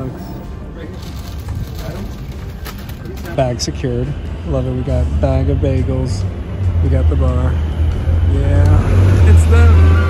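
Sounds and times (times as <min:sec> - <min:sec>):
low street rumble: 0:00.0 - 0:10.0
paper bag crinkling: 0:00.8 - 0:03.5.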